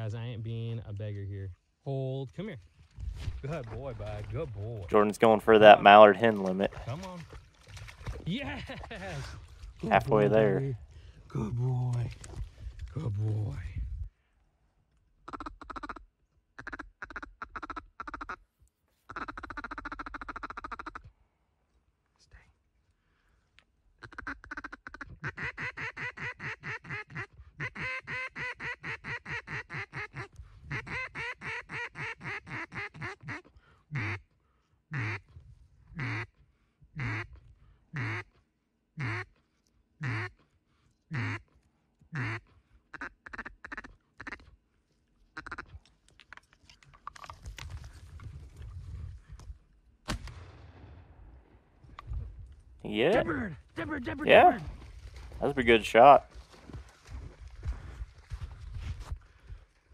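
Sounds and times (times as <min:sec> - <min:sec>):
duck quacking: 0:19.1 - 0:21.1, 0:24.0 - 0:34.2, 0:34.9 - 0:35.2, 0:36.0 - 0:36.3, 0:37.0 - 0:37.3, 0:38.0 - 0:38.3, 0:39.0 - 0:39.3, 0:40.0 - 0:40.4, 0:41.1 - 0:41.4, 0:42.1 - 0:44.4, 0:45.4 - 0:45.7.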